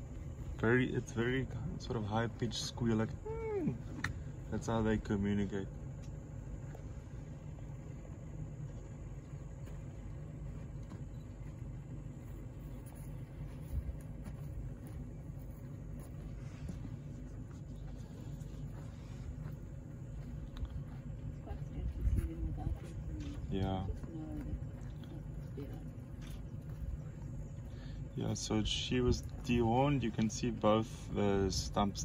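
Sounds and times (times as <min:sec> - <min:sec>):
steady low rumble: 0:00.0 - 0:32.0.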